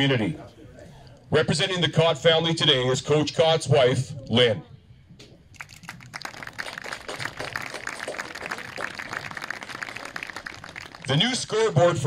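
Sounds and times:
crowd applause: 0:05.6 - 0:11.8.

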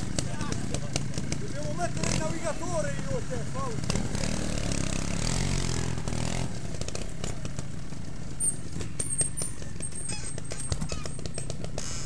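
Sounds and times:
motorcycle engine at low revs: 0:00.0 - 0:12.0.

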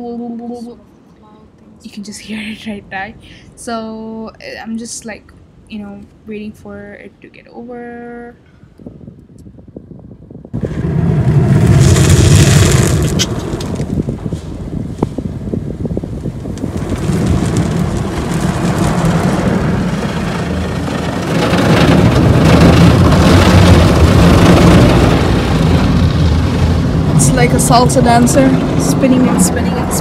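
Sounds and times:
water jets blasting car: 0:11.2 - 0:14.2, 0:16.2 - 0:30.0.

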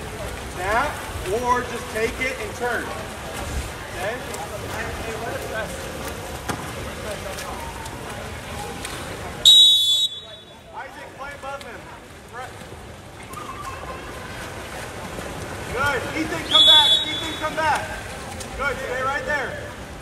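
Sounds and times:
referee's whistle blast: 0:09.5 - 0:10.5, 0:16.4 - 0:17.4.

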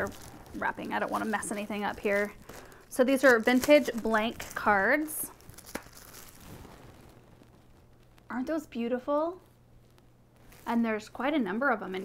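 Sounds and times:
plastic wrapper rustling: 0:00.0 - 0:08.3, 0:09.8 - 0:10.8
low steady hum: 0:00.0 - 0:12.0.

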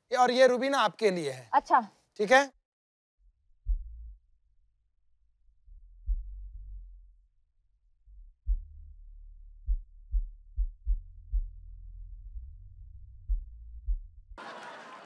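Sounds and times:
low bass drone: 0:03.2 - 0:14.4
heavy heartbeat-like thumps: 0:03.7 - 0:04.1, 0:06.0 - 0:06.5, 0:08.4 - 0:08.9, 0:09.6 - 0:14.2.

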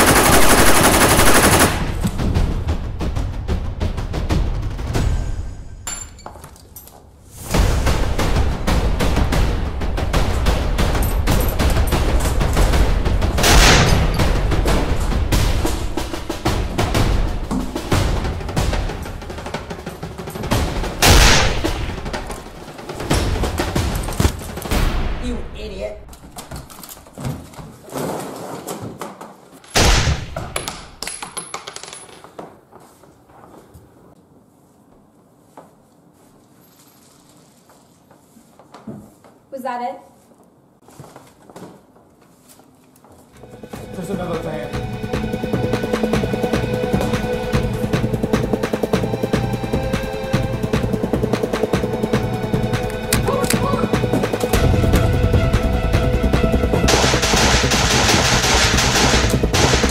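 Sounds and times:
rapid gunfire: 0:00.0 - 0:02.1, 0:20.5 - 0:24.8, 0:56.8 - 0:59.9
dramatic film score: 0:00.0 - 0:06.0, 0:07.3 - 0:27.0, 0:43.4 - 0:59.9.

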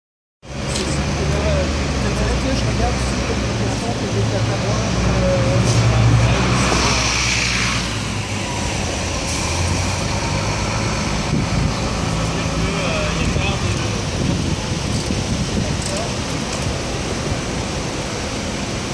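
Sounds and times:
cars idling and passing: 0:00.4 - 0:18.9
loud rushing noise: 0:02.8 - 0:18.9.

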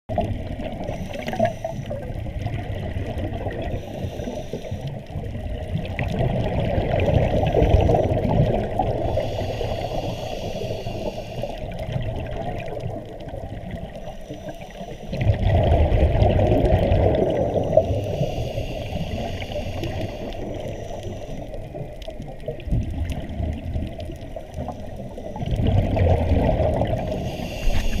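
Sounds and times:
underwater regulator bubbling: 0:00.1 - 0:28.0.

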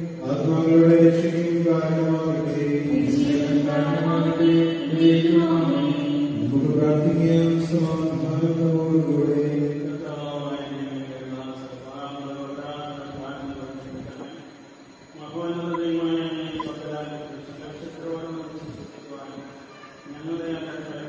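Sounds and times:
man chanting a prayer: 0:00.0 - 0:14.5, 0:15.2 - 0:21.0.

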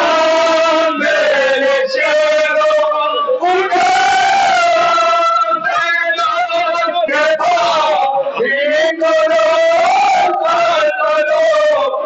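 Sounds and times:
men chanting a lament: 0:00.0 - 0:12.0.

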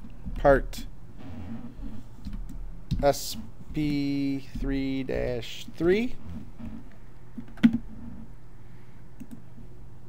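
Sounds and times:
steady low hum: 0:00.0 - 0:10.0
computer mouse clicks: 0:09.2 - 0:09.4.

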